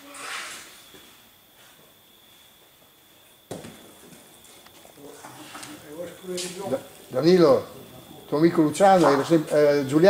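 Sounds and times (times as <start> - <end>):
ball landing with a thud: 3.5 - 4.2
ball rolling: 3.5 - 8.3
people talking quietly: 4.7 - 10.0.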